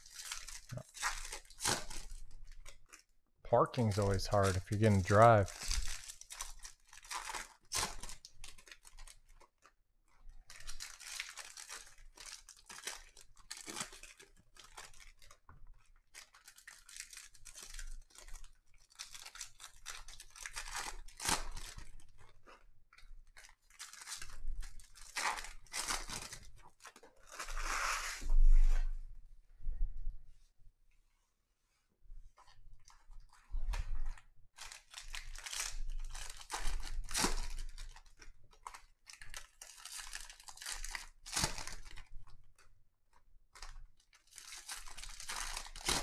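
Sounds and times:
foil wrappers tearing and crinkling: 0:00.0 - 0:03.0, 0:03.8 - 0:09.5, 0:10.5 - 0:15.4, 0:16.2 - 0:22.2, 0:23.3 - 0:27.8, 0:34.1 - 0:42.1, 0:43.6 - 0:46.0
cards rustling: 0:03.7 - 0:05.9.

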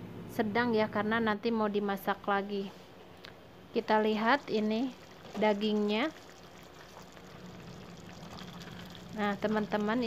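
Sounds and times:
sauce bubbling in a pot: 0:03.9 - 0:10.0.

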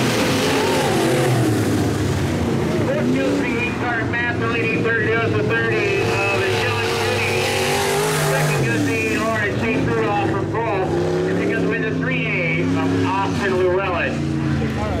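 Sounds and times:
race car engines: 0:00.0 - 0:15.0.

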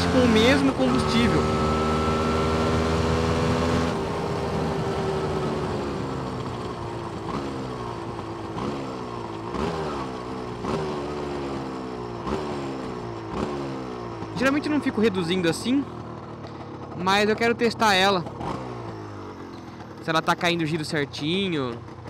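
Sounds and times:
two-stroke motorcycle engine revving: 0:00.0 - 0:22.0.

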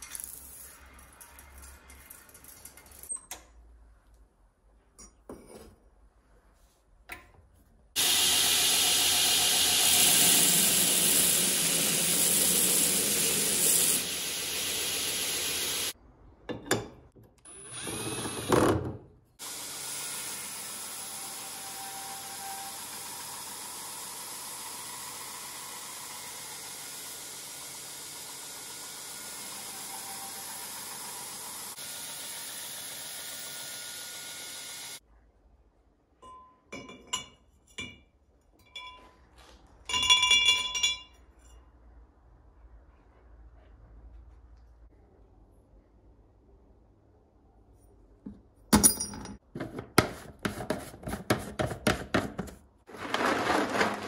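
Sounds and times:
belt grinder grinding steel: 0:08.0 - 0:15.9
metal clinking against glass jar: 0:39.9 - 0:41.2.

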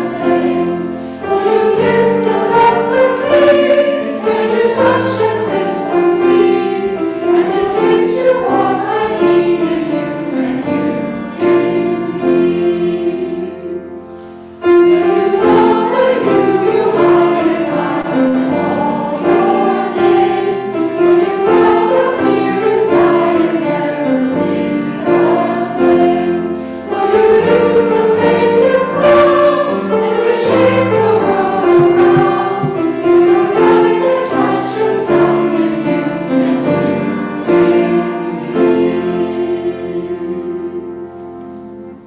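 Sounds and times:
choir singing: 0:00.0 - 0:42.0
grand piano accompaniment: 0:00.0 - 0:42.0.

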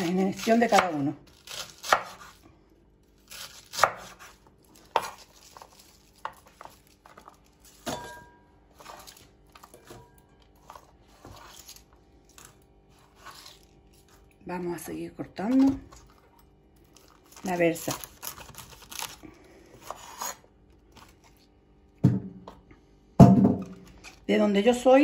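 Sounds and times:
knife slicing cabbage: 0:00.0 - 0:02.4, 0:03.2 - 0:07.9, 0:10.6 - 0:14.3, 0:17.0 - 0:21.4
kitchenware clinking: 0:07.8 - 0:08.5.

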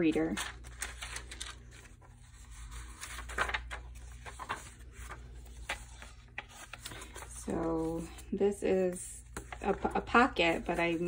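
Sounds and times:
paper pages rustling: 0:00.0 - 0:11.0.

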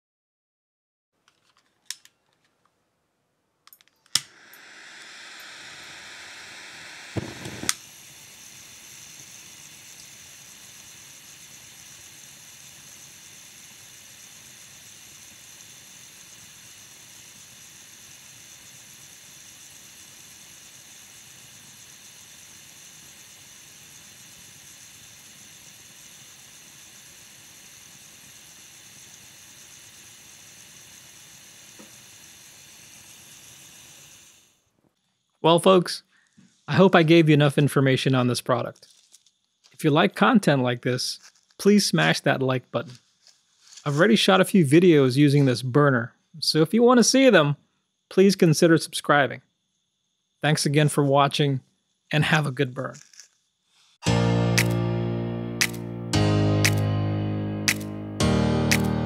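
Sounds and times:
gas burner hissing: 0:04.0 - 0:34.7, 0:35.3 - 0:38.0, 0:39.6 - 0:51.1, 0:57.7 - 0:57.9, 0:58.7 - 0:59.0
burner igniter click: 0:07.2 - 0:07.9, 0:57.7 - 0:57.9.

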